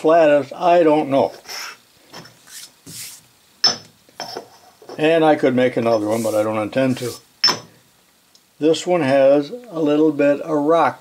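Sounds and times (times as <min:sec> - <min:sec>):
metal mold clacking on stone: 0:03.6 - 0:04.4.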